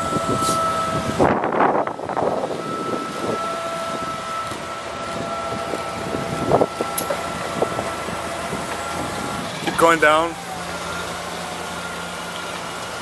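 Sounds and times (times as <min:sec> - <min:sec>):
forklift engine running: 0:00.0 - 0:13.0.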